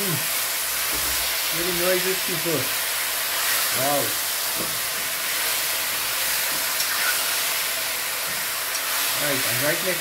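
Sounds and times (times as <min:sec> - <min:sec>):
meat sizzling in hot oil: 0:00.0 - 0:10.0.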